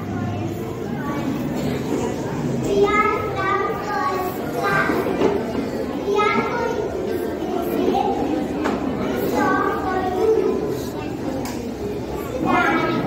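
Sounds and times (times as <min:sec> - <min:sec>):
children chattering: 0:00.0 - 0:13.0
girls' high voices: 0:00.0 - 0:13.0.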